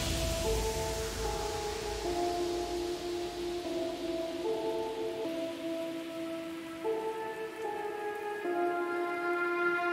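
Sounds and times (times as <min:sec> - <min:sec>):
soft ambient music: 0:00.0 - 0:09.9
steady hiss: 0:00.0 - 0:09.9.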